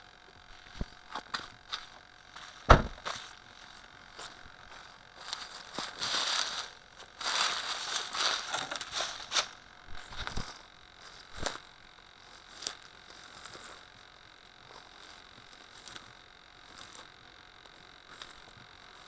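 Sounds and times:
sharp knocks: 0:02.7 - 0:03.1.

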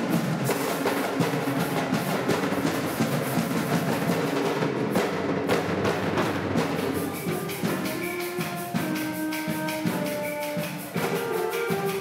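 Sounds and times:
concert band playing: 0:00.0 - 0:12.0
steady drum beat: 0:00.0 - 0:12.0.

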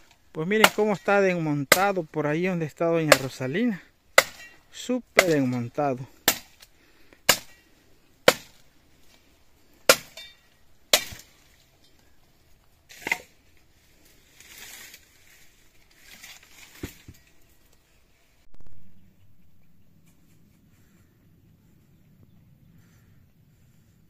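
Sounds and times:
axe chopping firewood: 0:00.0 - 0:01.9, 0:03.0 - 0:03.4, 0:04.1 - 0:08.7, 0:09.8 - 0:11.6, 0:12.9 - 0:13.4.

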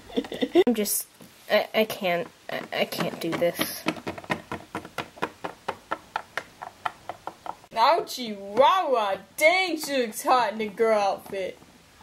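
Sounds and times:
plastic toy tapping on wood: 0:02.1 - 0:07.7, 0:08.5 - 0:08.8, 0:09.7 - 0:11.7.

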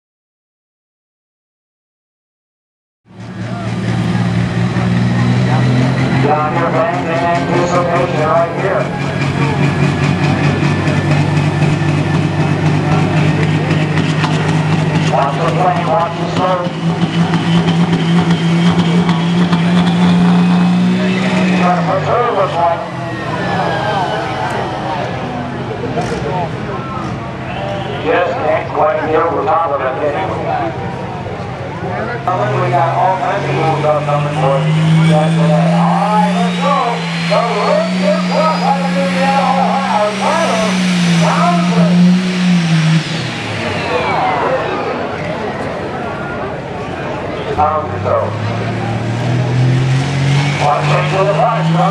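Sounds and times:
diesel engine revving high: 0:03.1 - 0:51.9
high turbo whine: 0:03.1 - 0:51.9.

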